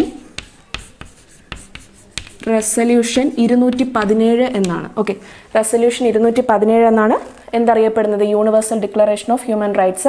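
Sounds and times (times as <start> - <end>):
chalk tapping and scratching: 0.0 - 5.0.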